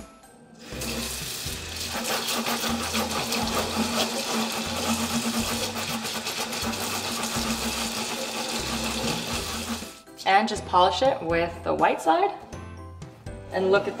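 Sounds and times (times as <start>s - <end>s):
sponge scrubbing grate: 1.7s - 10.0s.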